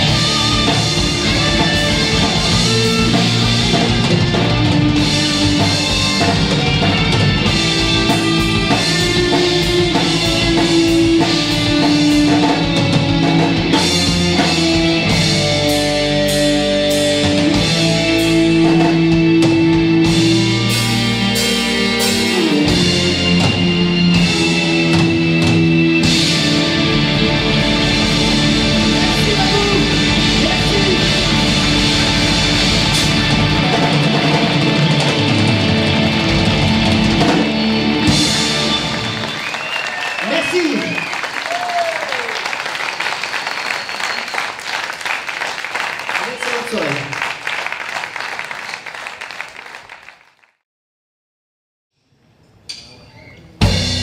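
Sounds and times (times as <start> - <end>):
audience applause and cheering: 0.0 - 12.6, 13.5 - 50.6
live rock band playing: 0.0 - 41.7, 53.6 - 54.0
audience whoops: 38.8 - 47.0.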